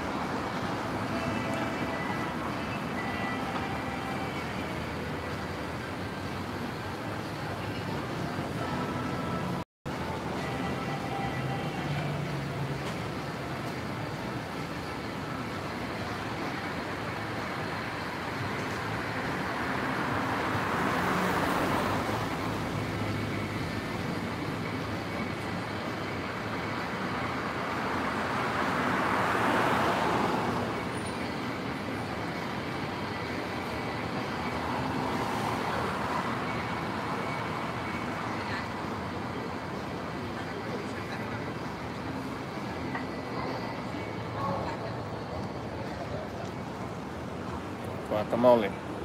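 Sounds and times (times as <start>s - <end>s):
vehicles passing by: 0.0s - 49.0s.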